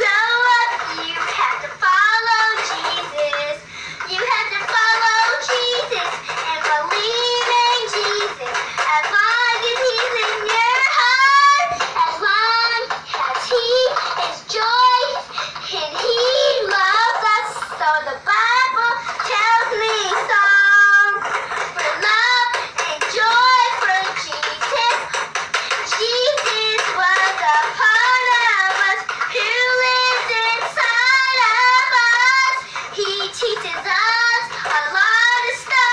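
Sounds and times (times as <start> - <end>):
girl singing in a high voice: 0.0 - 35.9
toy guitar strumming: 0.0 - 35.9.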